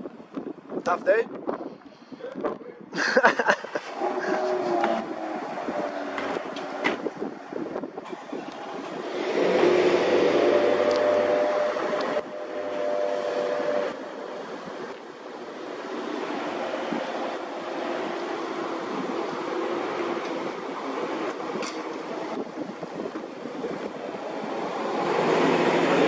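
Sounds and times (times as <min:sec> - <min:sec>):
street background noise: 0:00.0 - 0:26.0
vehicle driving past: 0:08.2 - 0:22.4, 0:23.9 - 0:26.0.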